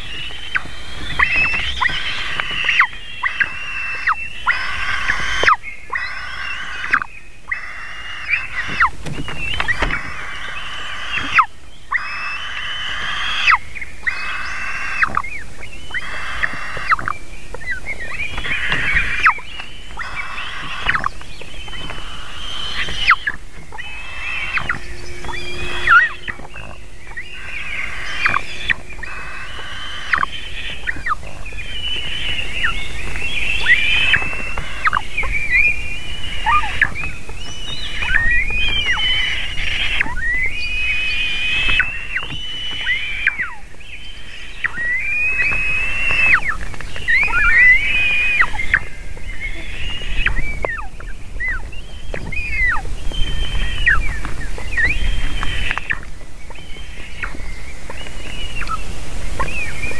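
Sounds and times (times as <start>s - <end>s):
eagle nestlings begging calls: 0.0s - 59.9s.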